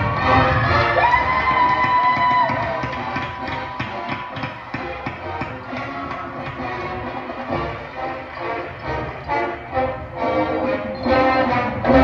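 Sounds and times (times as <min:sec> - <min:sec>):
marching band playing: 0:00.0 - 0:12.0
drum hits: 0:01.4 - 0:08.0.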